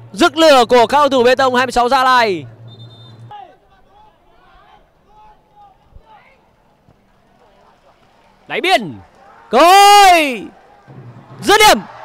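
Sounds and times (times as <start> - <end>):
crowd murmur: 4.8 - 9.5
players and spectators shouting: 7.5 - 12.0.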